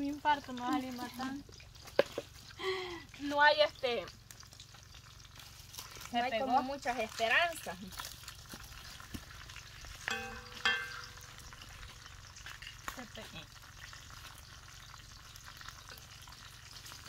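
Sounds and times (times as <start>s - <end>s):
chicken sizzling in oil: 0.0s - 17.0s.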